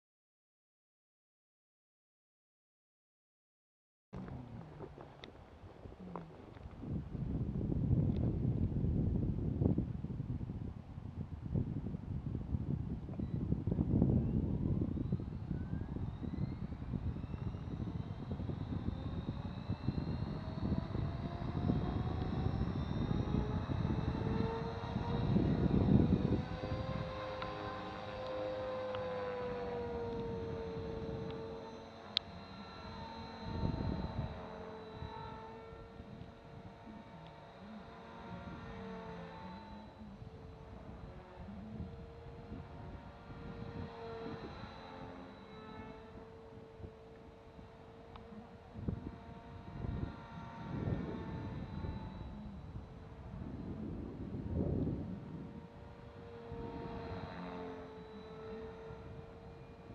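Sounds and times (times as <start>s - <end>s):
rc helicopter rotor whine: 4.2s - 59.9s
wind rumbling on microphone: 4.2s - 59.9s.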